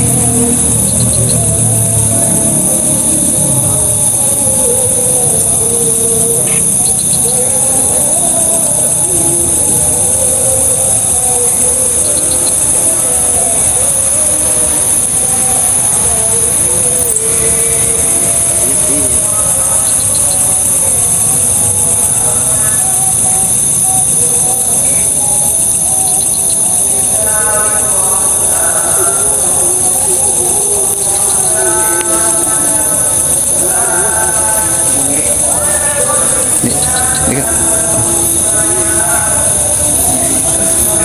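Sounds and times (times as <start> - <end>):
low voices murmuring: 0.0 - 41.0
night insects chorus: 0.0 - 41.0.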